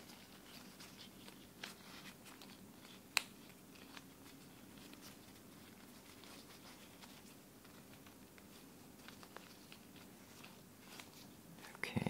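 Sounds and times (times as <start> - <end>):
rustle of latex gloves: 0.0 - 12.0.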